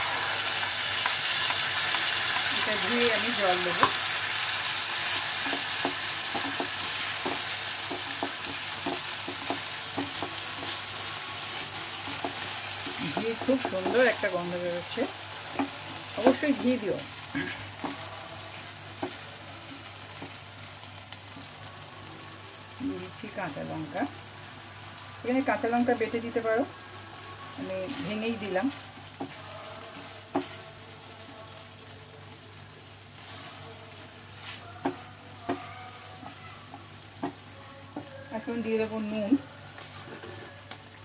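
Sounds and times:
paste sizzling in a frying pan: 0.0 - 41.0
spatula stirring: 0.2 - 16.9, 33.2 - 38.8
spatula scraping and tapping pan: 5.3 - 10.9, 12.0 - 14.4.

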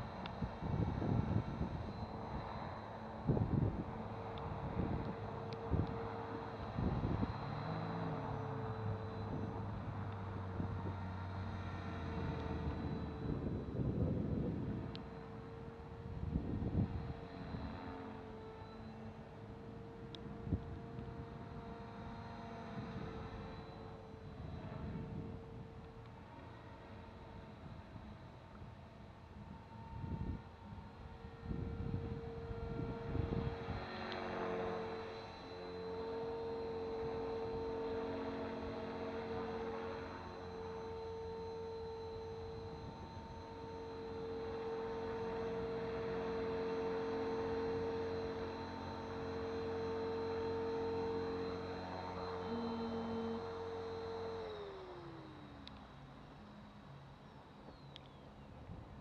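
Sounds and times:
rc helicopter whine: 0.0 - 59.0.

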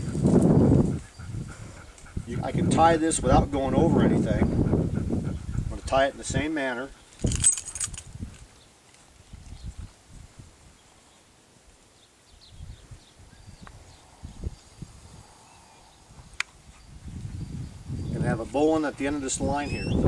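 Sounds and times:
cord rustling: 7.1 - 9.3.

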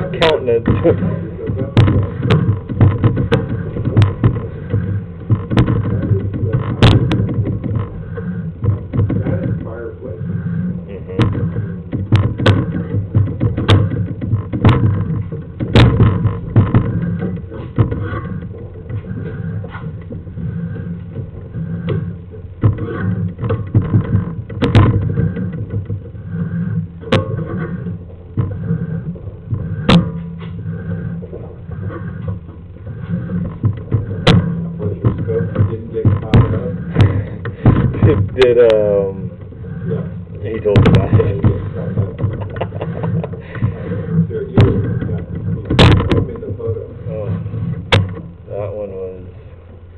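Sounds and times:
cable clicks and knocks: 0.0 - 48.5
low steady rumble: 0.0 - 49.9.

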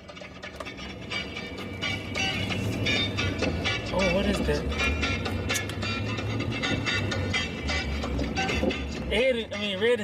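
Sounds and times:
low road rumble: 0.0 - 10.0.

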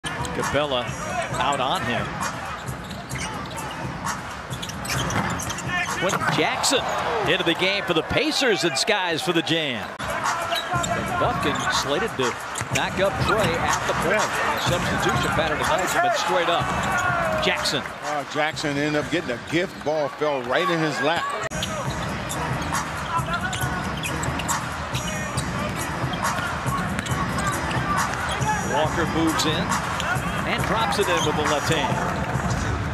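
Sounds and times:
crowd din: 0.0 - 32.9.

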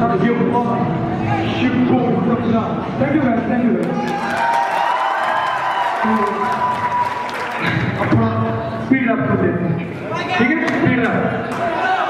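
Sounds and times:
audience clapping and cheering: 3.8 - 8.1.

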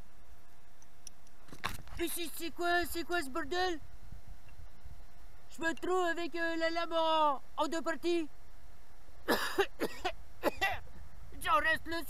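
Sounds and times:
camera handling rustle: 1.4 - 2.0.

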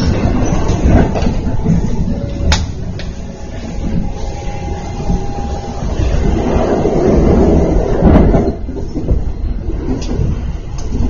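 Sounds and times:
train running rumble: 0.0 - 11.0.

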